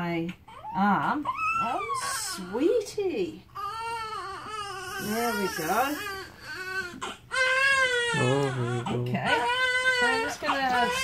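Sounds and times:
newborn baby crying: 0:00.5 - 0:11.0.

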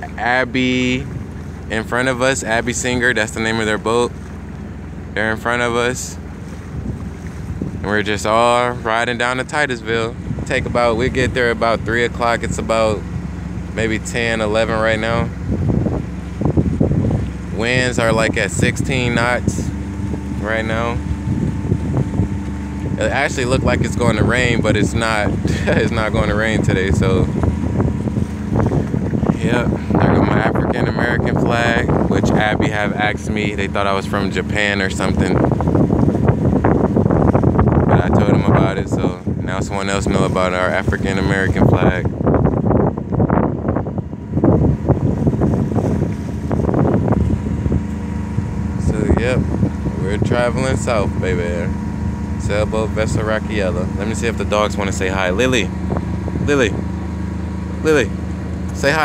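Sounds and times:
sailboat low hum: 0:00.0 - 0:59.0
wind on microphone: 0:00.0 - 0:59.0.

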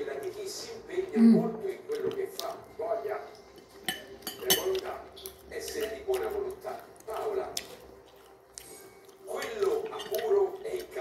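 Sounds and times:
cutlery clinking on ceramic plate: 0:03.6 - 0:06.4, 0:09.3 - 0:10.6.

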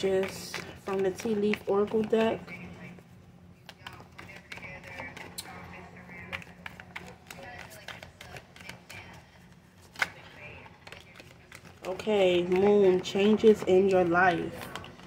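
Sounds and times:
cards being shuffled: 0:00.0 - 0:15.0.

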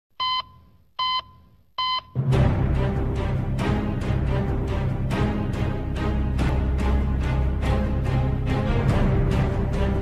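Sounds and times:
heart monitor beeps: 0:00.2 - 0:02.2.

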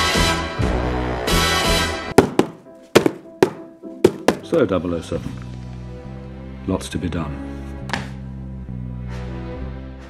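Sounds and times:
sharp thwacks: 0:02.2 - 0:04.6.

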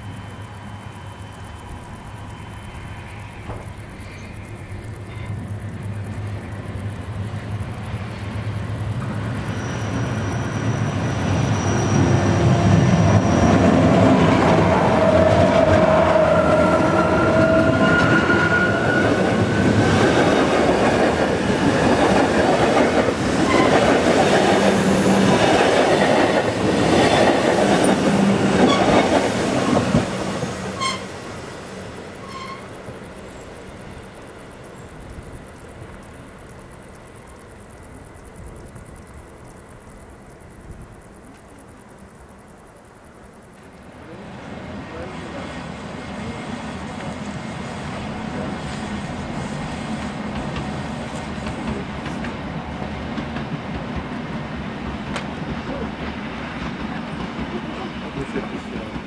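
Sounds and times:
train wheels squealing: 0:00.0 - 0:05.6, 0:07.9 - 0:20.6, 0:21.4 - 0:34.2
electric train hum: 0:00.0 - 0:59.0
train wheels clattering: 0:08.4 - 0:33.0, 0:48.7 - 0:59.0.

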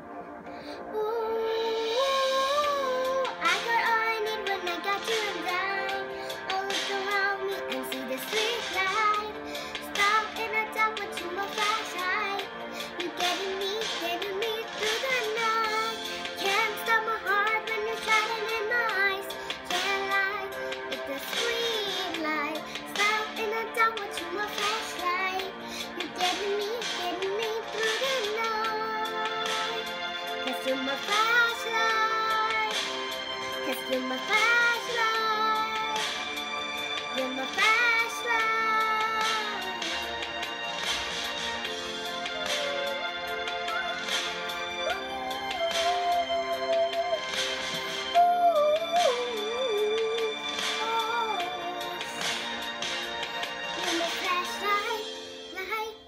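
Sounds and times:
girl singing a pop ballad: 0:00.0 - 0:56.0.

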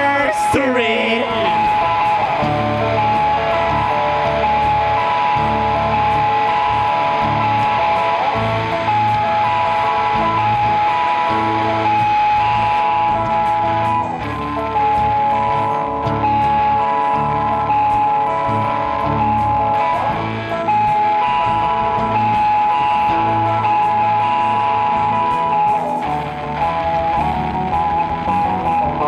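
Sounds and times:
bass line: 0:00.0 - 0:29.0
electric guitars: 0:00.0 - 0:29.0
keyboard sustained notes: 0:00.0 - 0:29.0.

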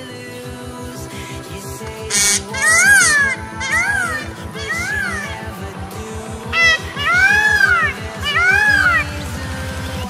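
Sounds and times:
electronic dance music: 0:00.8 - 0:10.0
peacock wailing calls: 0:02.1 - 0:05.6, 0:06.5 - 0:09.2.

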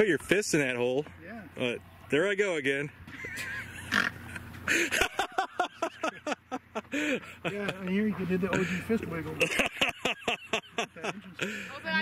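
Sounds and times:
men laughing: 0:03.0 - 0:12.0.

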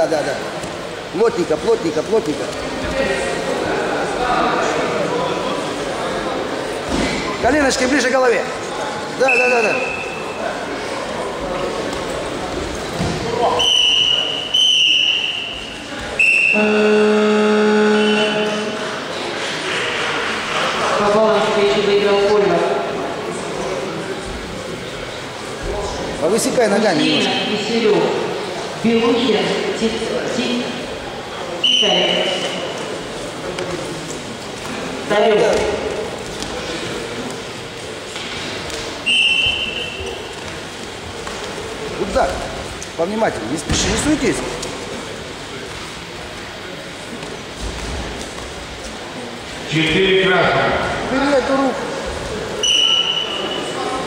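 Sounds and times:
voices echoing in a hall: 0:00.0 - 0:54.0
referee's whistle blast: 0:13.6 - 0:17.0, 0:31.6 - 0:32.6, 0:39.0 - 0:40.1, 0:52.6 - 0:53.7
steady held tone: 0:13.8 - 0:19.1.

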